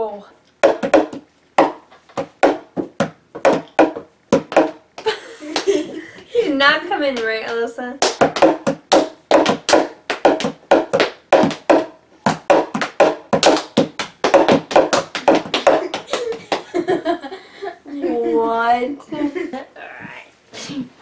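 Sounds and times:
sharp hand claps: 5.6s - 5.8s, 7.2s - 16.8s.

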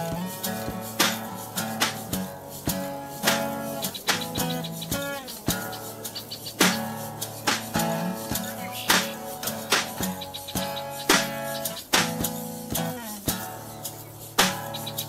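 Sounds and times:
acoustic guitar strumming: 0.0s - 15.0s
bird chirping: 2.7s - 15.0s.

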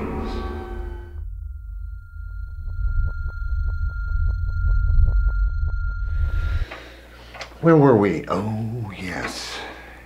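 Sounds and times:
deep rumble: 0.0s - 7.1s
high ringing tone: 0.0s - 7.2s.

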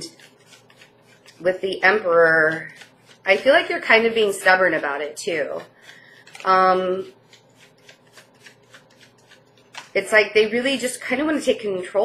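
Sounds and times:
cards being shuffled: 0.0s - 1.8s, 2.4s - 4.4s, 5.4s - 10.1s.

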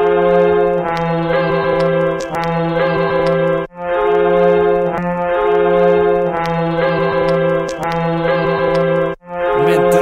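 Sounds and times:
brass chords: 9.4s - 10.0s.

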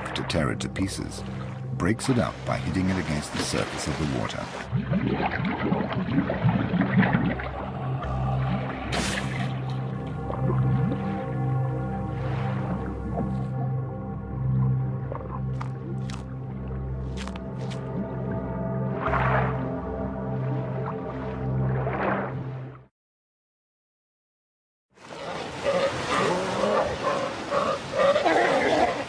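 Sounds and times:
sustained low tone music: 0.0s - 22.9s
sea lions calling: 25.0s - 29.0s.

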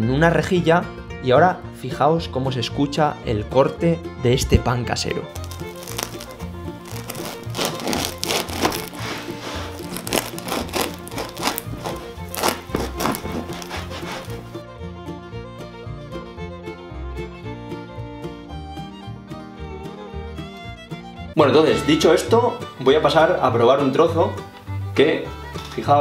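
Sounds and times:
background music: 0.0s - 26.0s
knife sawing crusty bread: 5.4s - 14.6s.

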